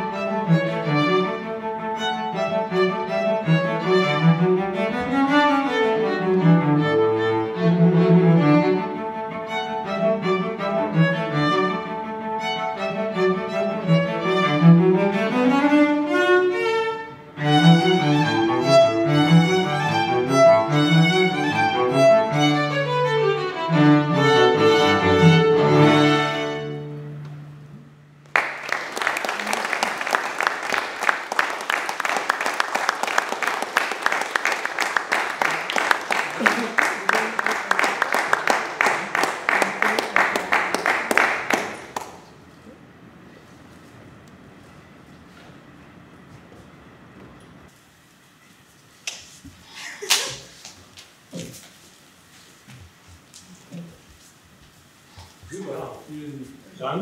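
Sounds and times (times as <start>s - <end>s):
violin and cello playing: 0.0s - 27.6s
audience applauding: 28.2s - 42.3s.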